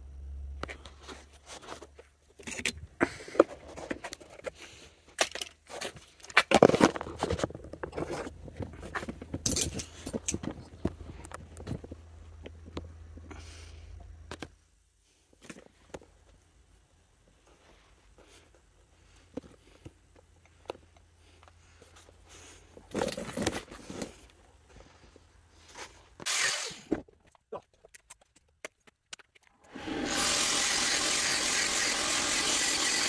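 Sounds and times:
low steady hum: 0.0 - 5.6, 6.8 - 26.2
metal parts and tools clattering: 5.2 - 10.6.

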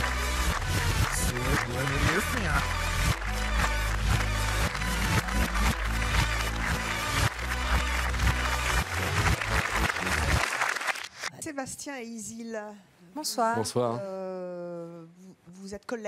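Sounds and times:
upbeat entrance music with bass line: 0.0 - 10.4
audience applauding: 0.0 - 11.3.

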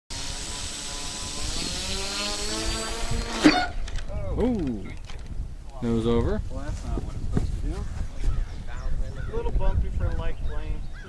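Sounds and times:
model airplane engine revving: 0.1 - 3.8
propeller striking grass: 0.1 - 5.5.

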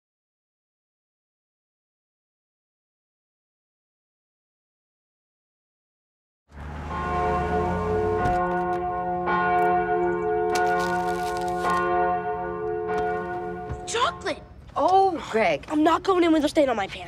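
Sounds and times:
church bells ringing: 6.6 - 14.6.

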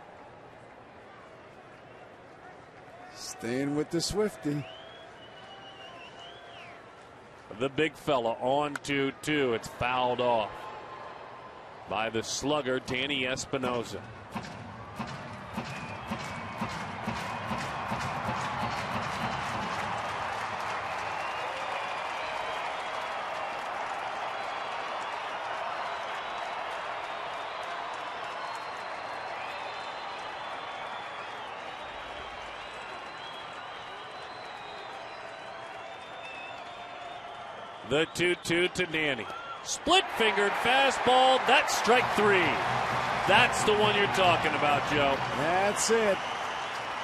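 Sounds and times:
crowd cheering: 0.0 - 47.0
whistles: 4.5 - 6.9, 14.8 - 23.0, 27.2 - 39.6, 43.6 - 47.0
crowd roar: 13.5 - 47.0
crowd clapping in rhythm: 14.9 - 37.5, 39.9 - 47.0.

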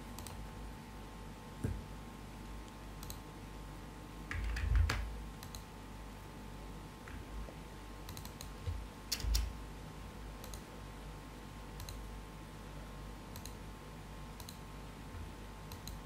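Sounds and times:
faint hum: 0.0 - 16.0
faint sharp clicks: 2.7 - 3.2, 11.8 - 12.0, 14.4 - 14.6, 15.7 - 16.0.

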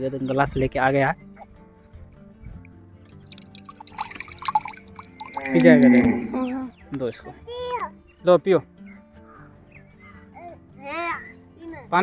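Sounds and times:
background music: 0.0 - 12.0
coconut water pouring into tumbler: 3.2 - 6.4.

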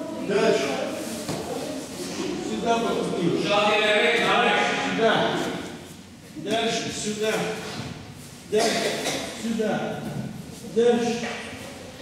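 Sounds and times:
person talking in a large hall: 0.0 - 12.0.

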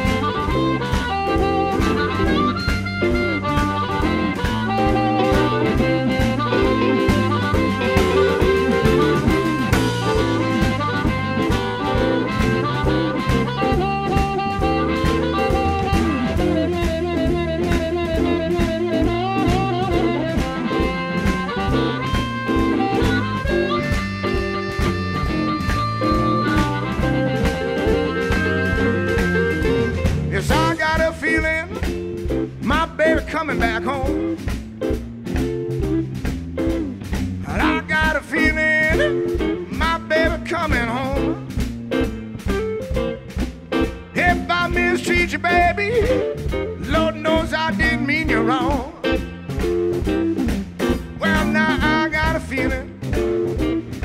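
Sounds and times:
blues harmonica solo: 0.0 - 54.0
electric blues band playing: 0.0 - 54.0.

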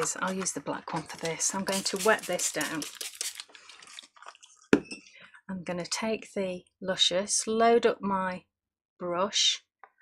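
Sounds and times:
craft handling sounds on tabletop: 0.0 - 5.1.

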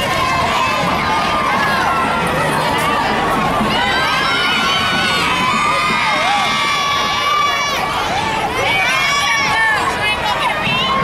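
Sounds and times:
children's voices: 0.0 - 11.0
crowd cheering and shouting: 0.0 - 11.0.

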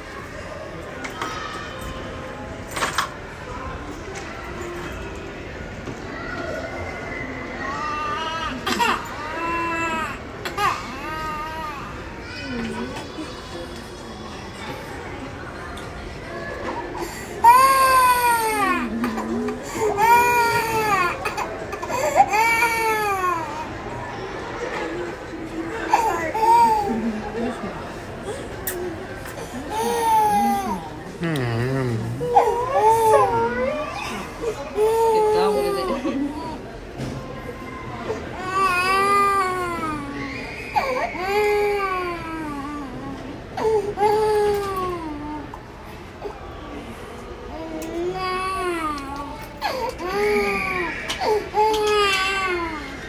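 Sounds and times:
toddler crying: 32.2 - 35.9.

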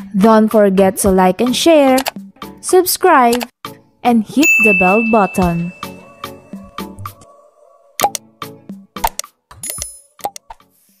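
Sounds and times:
cartoon clicks and pops: 2.0 - 2.2, 8.0 - 8.2, 9.0 - 10.6
short bright ding: 4.4 - 6.0.

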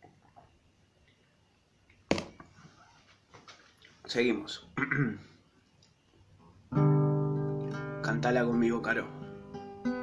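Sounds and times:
acoustic guitar chord strummed: 6.7 - 10.0.

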